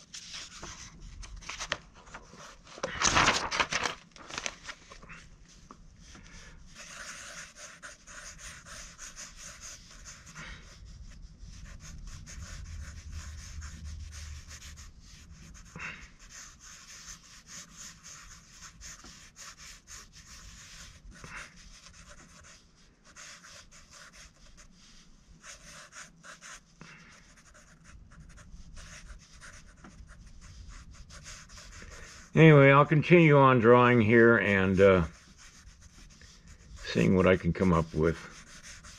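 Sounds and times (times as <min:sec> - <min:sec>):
marker scribbling on paper: 0:06.6 - 0:32.6, 0:33.4 - 0:38.9.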